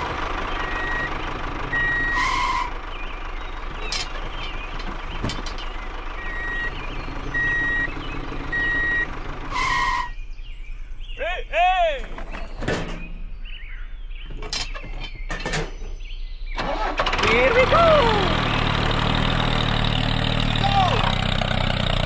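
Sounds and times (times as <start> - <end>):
engine rumble: 0.0 - 22.0
reversing alarm beeps: 1.7 - 2.5, 6.2 - 6.8, 7.4 - 7.9, 8.5 - 9.1.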